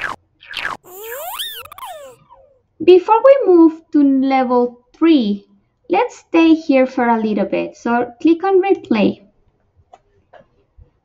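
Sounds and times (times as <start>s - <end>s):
short falling blips: 0.8s - 2.5s
tone sliding up and down: 0.9s - 2.5s.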